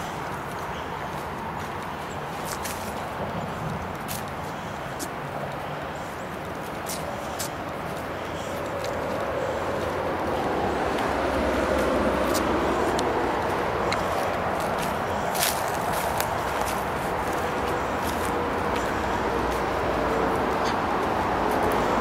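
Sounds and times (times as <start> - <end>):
footsteps on dirt path: 0.0 - 22.0
motorway traffic rushing: 0.0 - 22.0.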